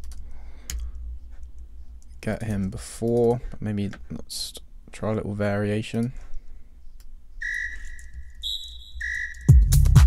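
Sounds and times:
electronic whistle notes: 7.4 - 9.8
tech-house track with kick drum: 9.5 - 10.0.

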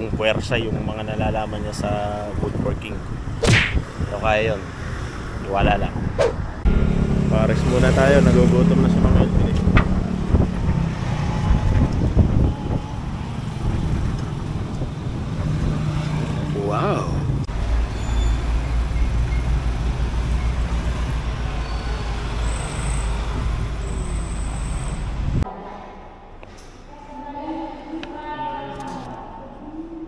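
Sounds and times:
vehicle engines passing: 1.2 - 26.4.

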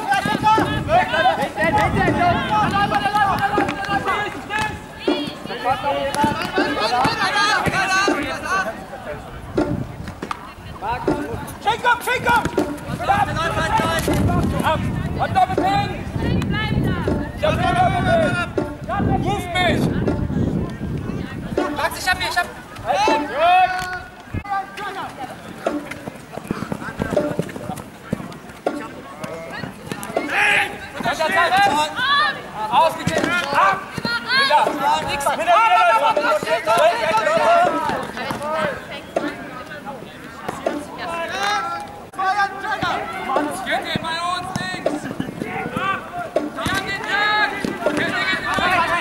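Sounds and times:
players shouting: 0.0 - 9.8, 10.7 - 20.2, 21.5 - 49.0
sharp knocks: 42.8 - 46.9.

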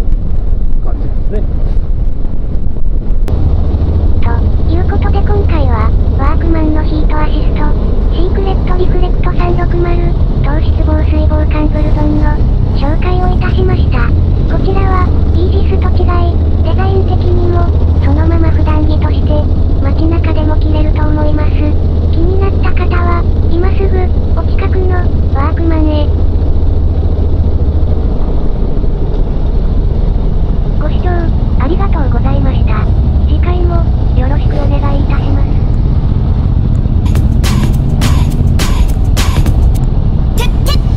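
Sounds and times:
motorcycle engine and wind rumble: 0.0 - 40.9
indistinct voice: 4.2 - 26.1, 40.4 - 40.9.

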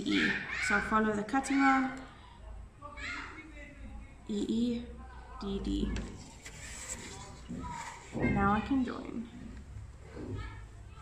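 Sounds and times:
plastic ruler sliding on paper: 6.2 - 8.2.

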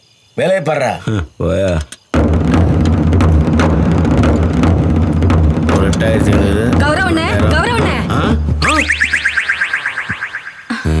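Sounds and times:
rising electronic chirps: 8.6 - 11.0.

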